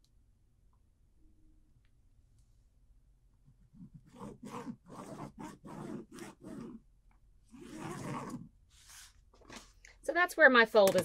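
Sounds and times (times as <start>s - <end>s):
marking pen scratching on fabric: 3.6s - 6.8s, 7.5s - 9.2s.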